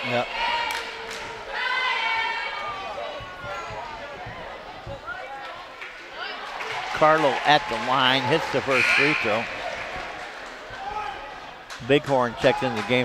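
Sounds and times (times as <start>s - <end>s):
crowd voices and shouts: 0.0s - 13.0s.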